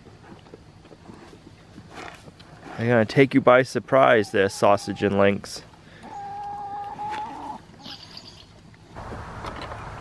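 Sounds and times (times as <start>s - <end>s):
steady outdoor hiss: 0.0s - 10.0s
chicken calling: 4.0s - 5.4s, 6.0s - 7.6s.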